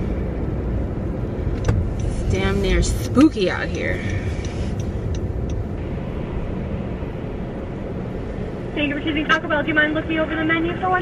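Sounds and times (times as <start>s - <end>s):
car engine rumble: 0.0s - 11.0s
road noise inside car: 0.0s - 11.0s
faint ticks: 3.2s - 5.6s.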